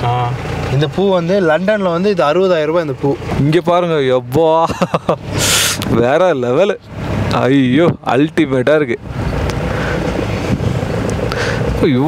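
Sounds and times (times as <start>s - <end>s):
vehicle engine and road rumble: 0.0s - 12.0s.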